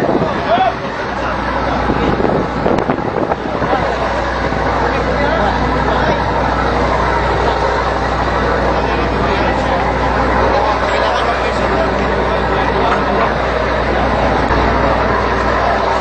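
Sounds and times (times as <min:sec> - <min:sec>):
loud rushing noise: 0:00.0 - 0:16.0
people talking: 0:00.0 - 0:16.0
ship machinery drone: 0:00.0 - 0:16.0.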